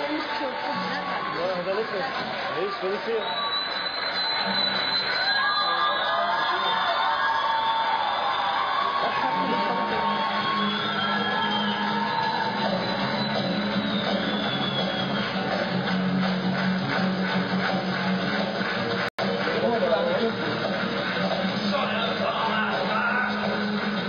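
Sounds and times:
guitar: 0:03.2 - 0:07.0, 0:08.9 - 0:24.0.

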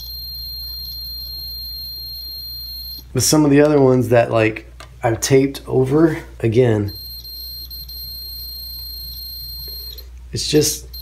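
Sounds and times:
multimeter continuity beep tone: 0:00.0 - 0:03.1, 0:06.9 - 0:11.0.

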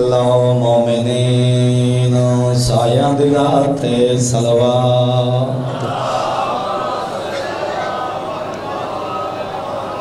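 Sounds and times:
man chanting into a microphone: 0:00.0 - 0:06.3.

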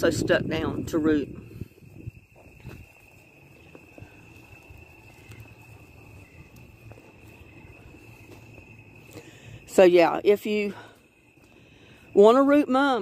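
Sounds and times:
night insects trilling: 0:00.0 - 0:13.0.

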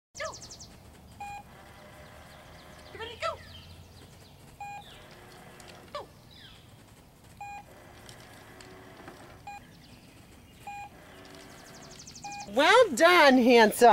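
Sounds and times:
short electronic beeps: 0:01.2 - 0:01.5, 0:04.6 - 0:05.1, 0:07.4 - 0:07.8, 0:09.4 - 0:09.6, 0:10.6 - 0:11.0, 0:11.7 - 0:12.6.

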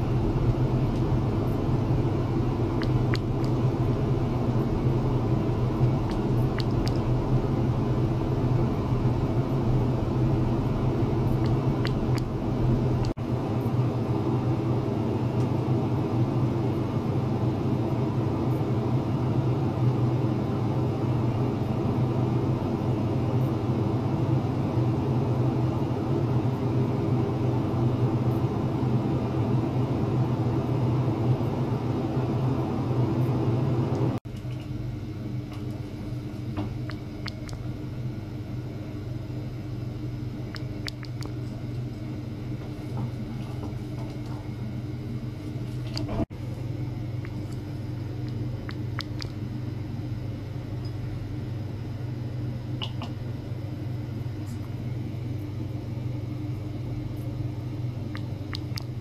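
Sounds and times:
low hum and rumble: 0:00.0 - 0:59.0.

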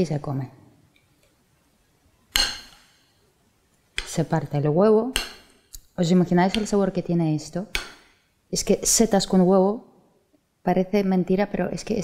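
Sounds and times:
metal spoon clinking ceramic bowl: 0:02.4 - 0:03.1.

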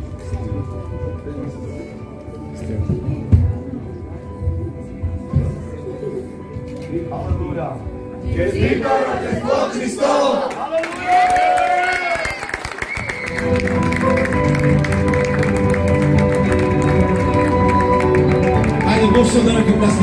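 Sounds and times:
crowd voices and cheering: 0:08.4 - 0:20.0
people clapping along: 0:10.2 - 0:20.0.

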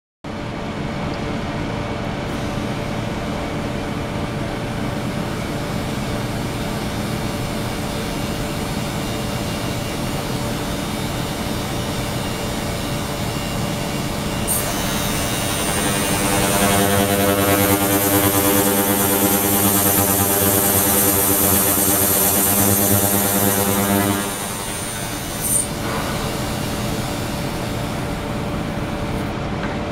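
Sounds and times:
ultrasonic cleaner hissing: 0:04.6 - 0:29.2.

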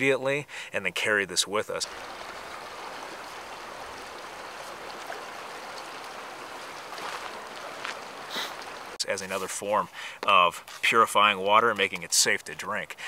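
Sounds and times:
water hissing through filter: 0:01.8 - 0:09.6.

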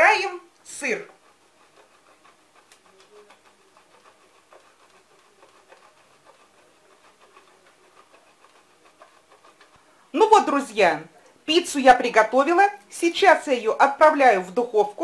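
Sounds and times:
cheese grating on metal grater: 0:00.0 - 0:15.0.

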